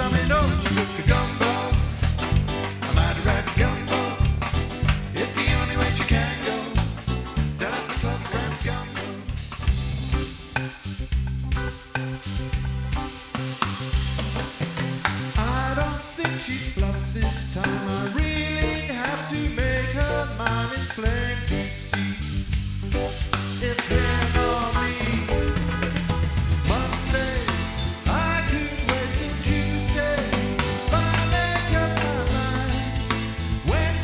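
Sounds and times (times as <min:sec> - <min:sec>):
man singing: 0:00.0 - 0:09.4, 0:15.2 - 0:22.3, 0:23.5 - 0:26.0, 0:26.6 - 0:34.0
drum kit beat: 0:00.0 - 0:34.0
keyboards: 0:00.0 - 0:34.0.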